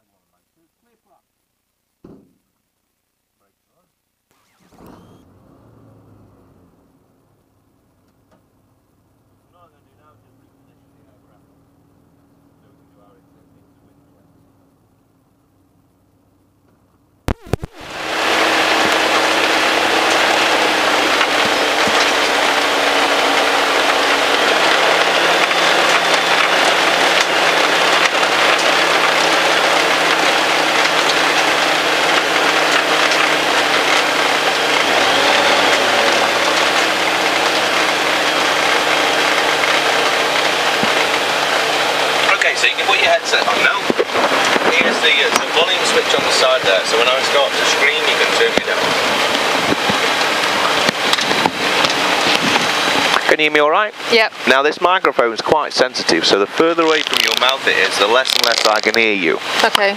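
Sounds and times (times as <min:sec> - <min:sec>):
propeller engine running: 0:17.0 - 0:59.9
wind buffeting crackles: 0:17.8 - 0:53.4, 0:55.5 - 0:59.9
wind rush on microphone: 0:48.8 - 0:53.3.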